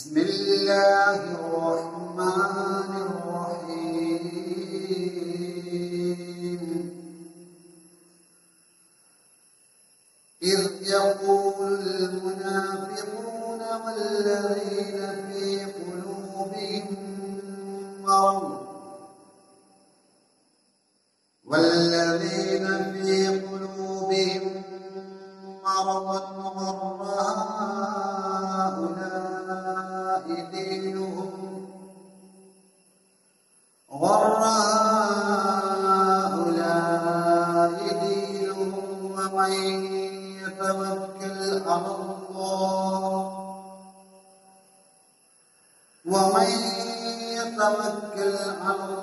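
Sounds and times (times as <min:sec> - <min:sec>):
man chanting melodically: 0:00.0 - 0:07.2, 0:10.4 - 0:19.0, 0:21.5 - 0:31.9, 0:33.9 - 0:43.9, 0:46.1 - 0:49.0.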